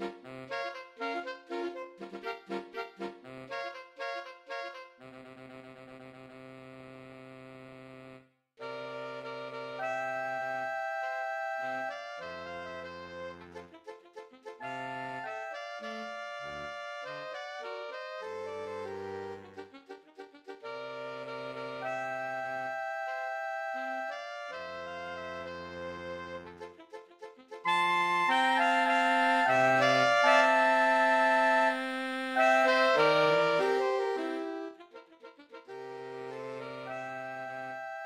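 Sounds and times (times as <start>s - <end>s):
saxophone quartet playing chords: 0.0s - 38.0s.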